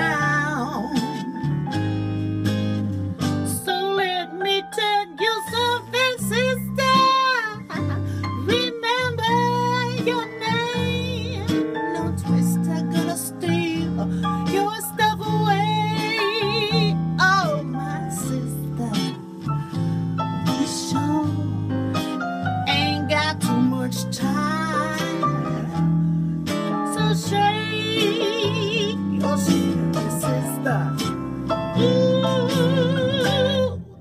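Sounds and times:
woman singing with vibrato: 0.0 - 1.4, 3.5 - 19.2, 20.5 - 21.6, 22.7 - 25.8, 26.9 - 31.0, 31.7 - 34.0
backing track with guitar: 0.0 - 34.0.

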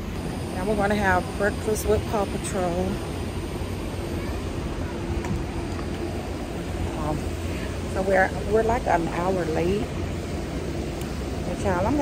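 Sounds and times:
faint steady hum: 0.0 - 12.0
low outdoor rumble: 0.0 - 12.0.

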